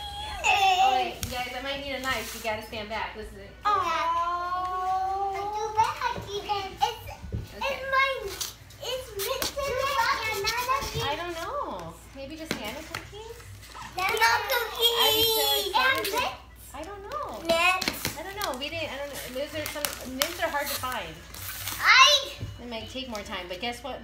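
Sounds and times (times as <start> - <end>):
children squealing and babbling: 0.0 - 1.1.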